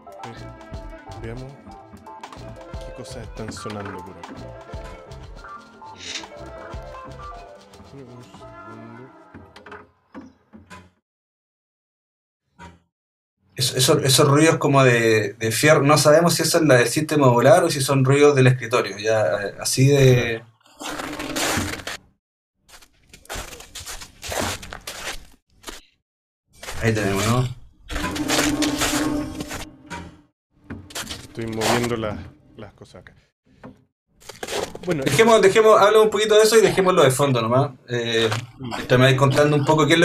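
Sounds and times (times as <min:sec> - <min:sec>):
experimental electronic music: 0:00.0 - 0:08.7.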